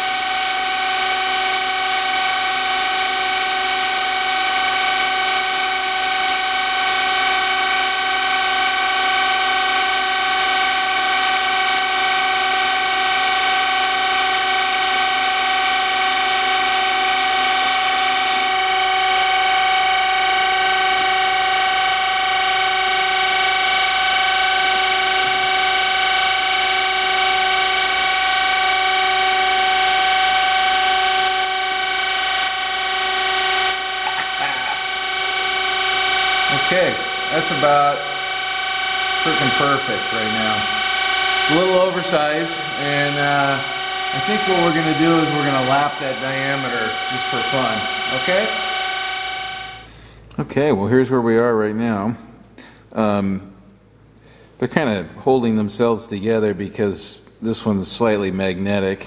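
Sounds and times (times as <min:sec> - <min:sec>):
cordless drill turning: 0:00.0 - 0:50.0
grinding wheel whining: 0:00.0 - 0:50.0.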